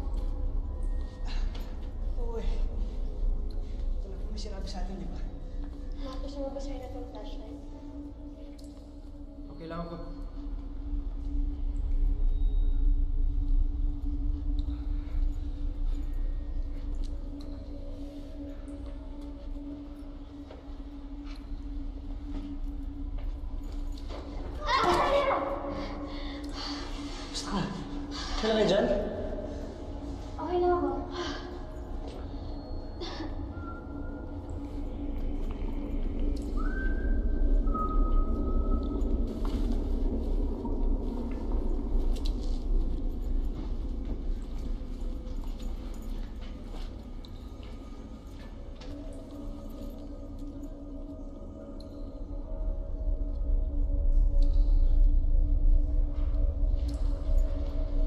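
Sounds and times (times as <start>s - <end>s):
low steady drone: 0.0s - 58.0s.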